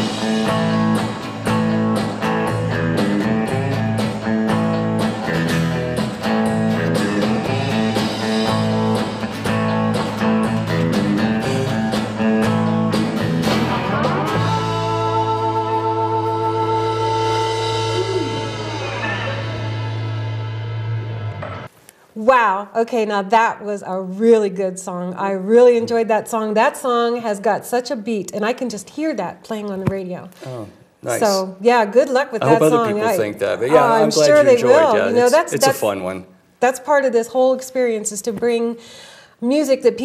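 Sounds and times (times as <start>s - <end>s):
drum kit beat: 0.0s - 15.9s, 16.5s - 21.7s, 32.4s - 35.9s
bass guitar: 0.0s - 21.7s, 30.4s - 31.4s, 32.4s - 35.8s
electric guitar: 0.0s - 21.7s.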